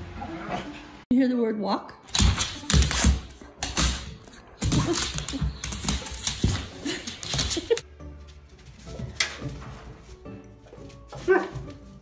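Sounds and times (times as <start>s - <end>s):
dog moving about indoors: 2.1s - 12.0s.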